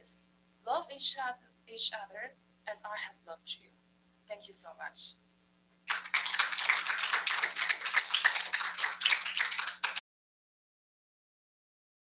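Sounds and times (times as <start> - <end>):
audience applause: 5.9 - 10.0.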